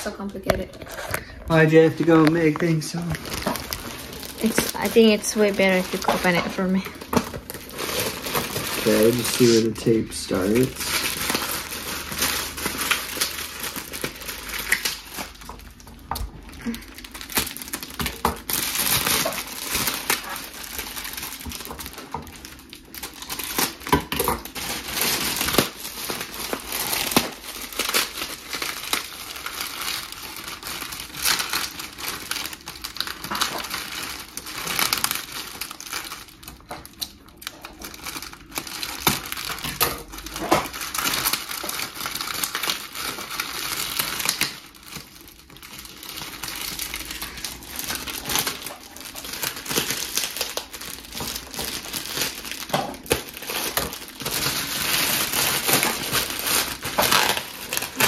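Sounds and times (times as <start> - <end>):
foil packaging crackling: 0.0 - 58.0.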